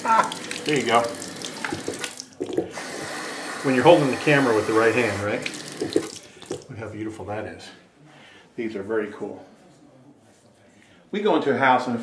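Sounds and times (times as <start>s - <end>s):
faucet water splashing into sink: 0.0s - 6.7s.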